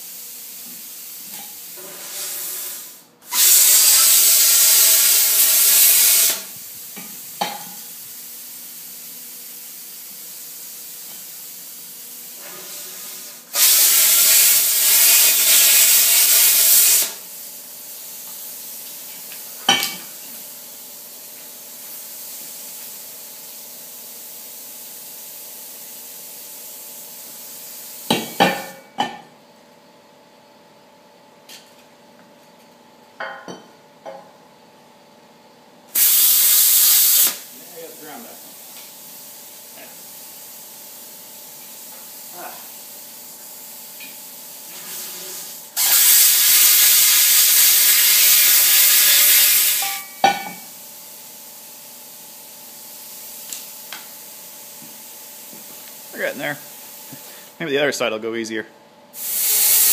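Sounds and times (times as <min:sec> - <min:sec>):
plasma cutter hissing arc: 0:00.0 - 0:06.6, 0:07.8 - 0:18.8, 0:36.0 - 0:51.6, 0:59.2 - 0:59.9.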